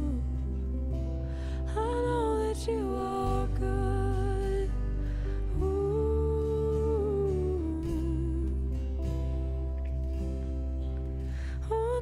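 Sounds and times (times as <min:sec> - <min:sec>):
low sustained accompaniment: 0:00.0 - 0:12.0
woman singing a long note: 0:01.7 - 0:08.8.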